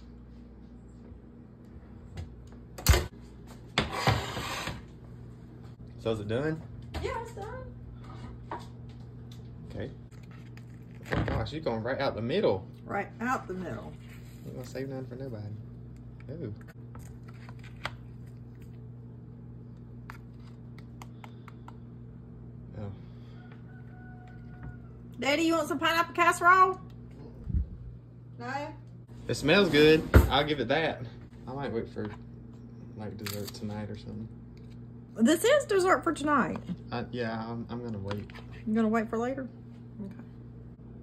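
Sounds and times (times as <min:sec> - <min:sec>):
low steady hum: 0:00.0 - 0:41.0.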